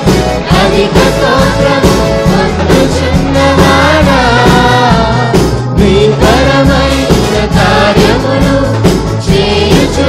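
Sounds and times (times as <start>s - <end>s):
group singing in unison: 0.0s - 10.0s
guitar: 0.0s - 10.0s
keyboards: 0.0s - 10.0s
steady drum beat: 0.0s - 10.0s.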